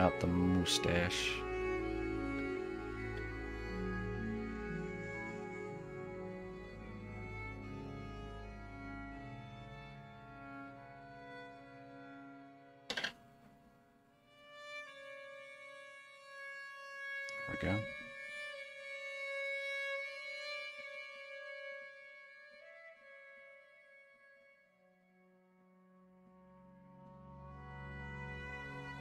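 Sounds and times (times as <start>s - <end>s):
string and organ chords: 0.0s - 13.1s, 17.2s - 19.0s, 26.0s - 29.0s.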